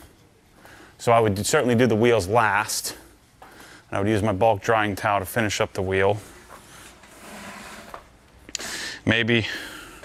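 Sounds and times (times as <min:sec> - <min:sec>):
hissing breath in: 0:08.5 - 0:09.0.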